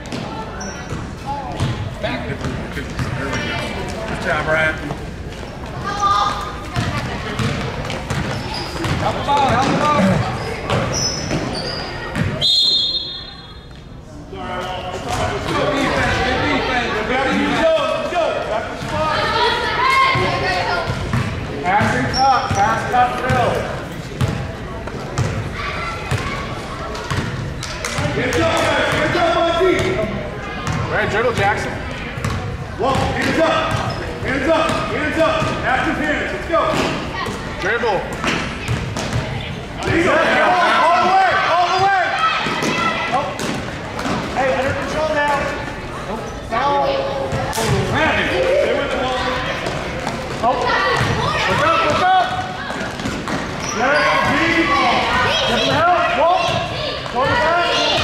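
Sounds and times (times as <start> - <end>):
people talking: 0.0 - 12.4, 13.1 - 58.0
basketball bouncing on gym floor: 0.9 - 3.2, 6.7 - 11.5, 20.9 - 23.6, 24.2 - 25.4, 27.0 - 29.2, 32.2 - 34.0, 38.1 - 40.0, 49.6 - 51.5.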